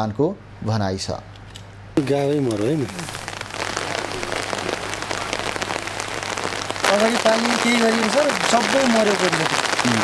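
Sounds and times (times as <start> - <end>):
rain pattering: 2.0 - 10.0
man speaking: 6.8 - 10.0.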